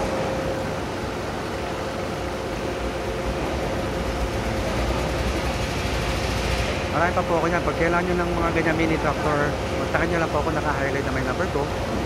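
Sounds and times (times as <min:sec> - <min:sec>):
small diesel engine running: 0:01.8 - 0:12.0.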